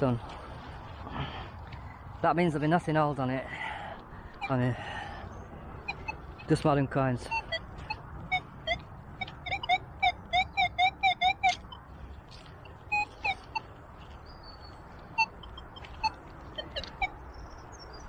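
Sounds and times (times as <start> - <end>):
metal detector beeps: 5.8 - 11.9, 12.6 - 13.7, 15.1 - 17.2.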